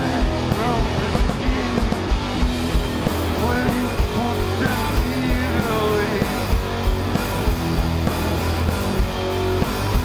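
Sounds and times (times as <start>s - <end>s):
distorted guitars and bass: 0.0s - 10.0s
steady drum beat: 0.0s - 10.0s.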